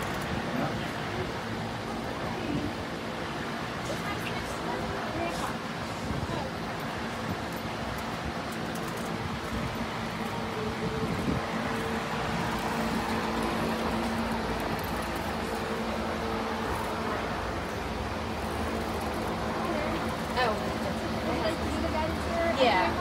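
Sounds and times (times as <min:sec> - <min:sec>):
steady mechanical hum: 0:00.0 - 0:23.0
street noise: 0:00.0 - 0:23.0.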